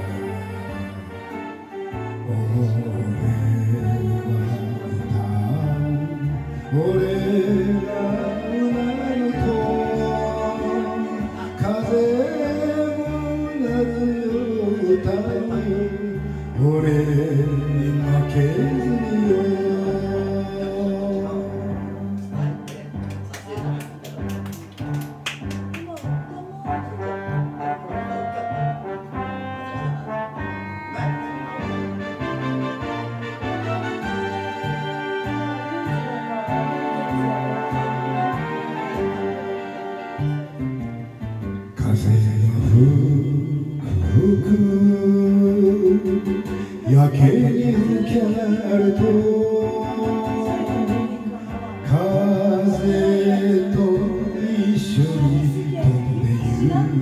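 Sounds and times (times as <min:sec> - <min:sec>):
man singing karaoke: 0:00.0 - 0:24.9, 0:27.0 - 0:40.6, 0:41.6 - 0:57.0
backing track with guitar: 0:00.0 - 0:57.0
brass-led instrumental music: 0:00.0 - 0:57.0.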